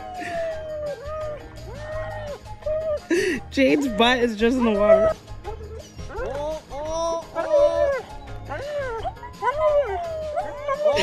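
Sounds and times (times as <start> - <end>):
dog howling and yipping: 0.0 - 3.1, 3.7 - 11.0
background music: 0.0 - 11.0.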